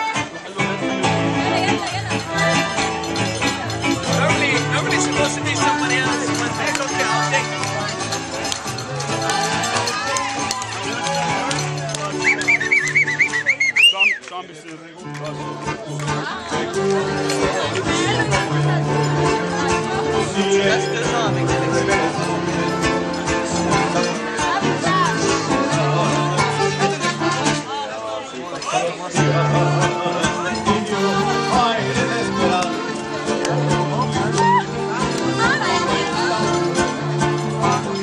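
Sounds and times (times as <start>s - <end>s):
mariachi band playing: 0.0s - 14.3s, 15.0s - 38.0s
people chattering: 0.0s - 38.0s.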